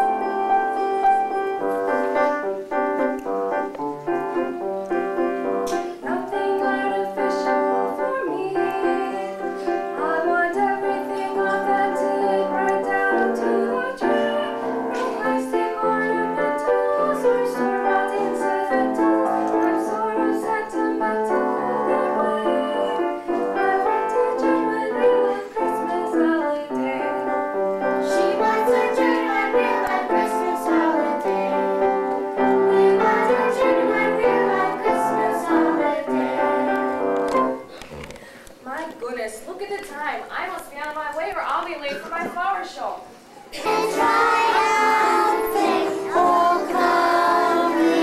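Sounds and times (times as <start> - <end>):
piano playing: 0.0 - 37.9, 43.6 - 48.0.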